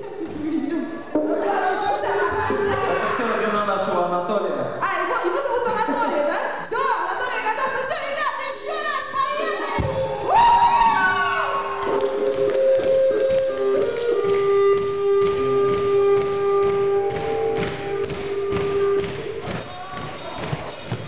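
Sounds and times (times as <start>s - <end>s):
steady drum beat: 14.2s - 21.0s.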